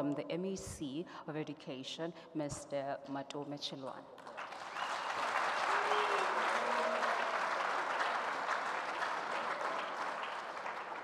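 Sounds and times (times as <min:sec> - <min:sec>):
audience applause: 0:04.2 - 0:11.0.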